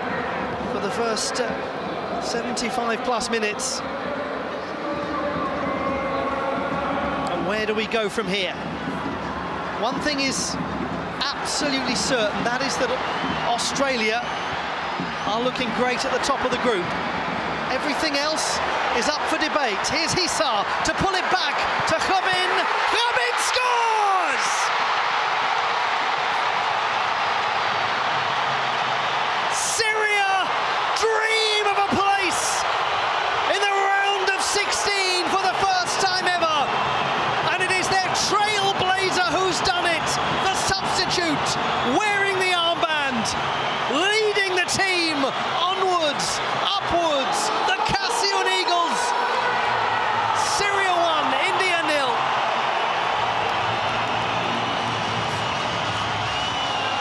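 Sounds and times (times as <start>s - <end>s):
stadium crowd roaring: 0.0s - 57.0s
voices shouting: 17.8s - 27.6s.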